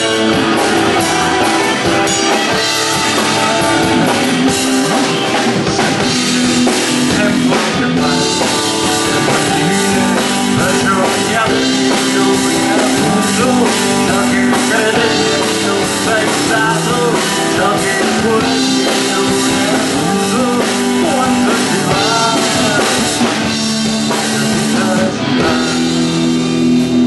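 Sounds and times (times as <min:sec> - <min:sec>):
drum kit: 0:00.0 - 0:27.0
electric guitars: 0:00.0 - 0:27.0.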